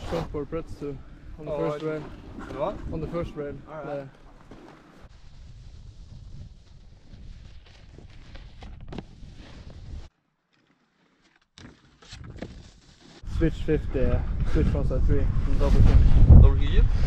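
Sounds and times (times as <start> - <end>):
wind rumbling on microphone: 0.0 - 3.7, 5.1 - 10.1, 13.2 - 17.0
snowboards scraping over snow: 0.0 - 10.1, 12.4 - 16.7.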